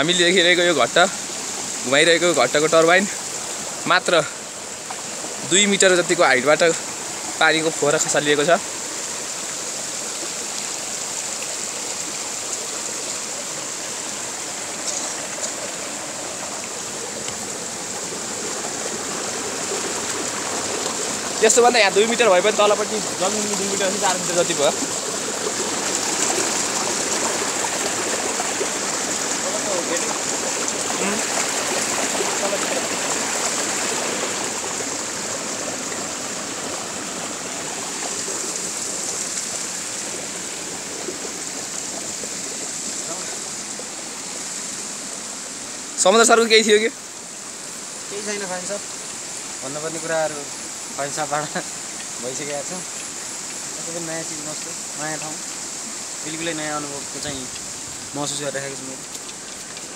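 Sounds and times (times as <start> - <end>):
stream water rushing: 0.0 - 59.9.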